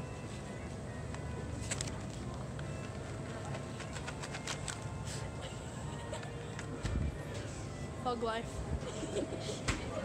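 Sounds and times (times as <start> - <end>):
low background hum: 0.0 - 10.0
crinkles and clicks: 1.1 - 4.9.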